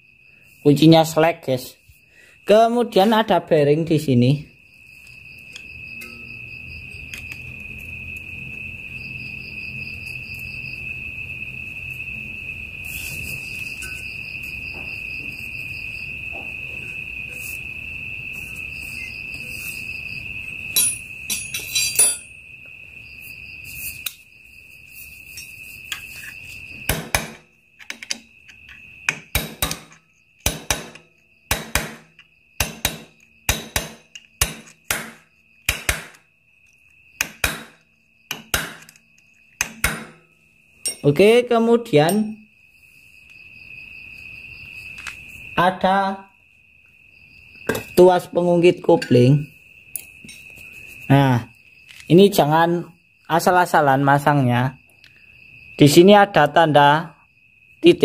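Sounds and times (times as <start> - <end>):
crickets trilling: 0.0 - 58.0
sharp metallic taps of hand tool: 37.2 - 39.0, 39.6 - 40.2.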